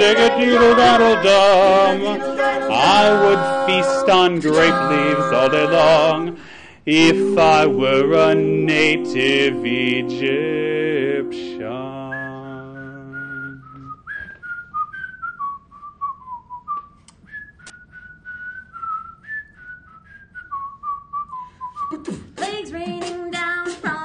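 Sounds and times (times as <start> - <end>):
a cappella voices singing: 0.0 - 13.9
person whistling a melody: 7.1 - 22.2.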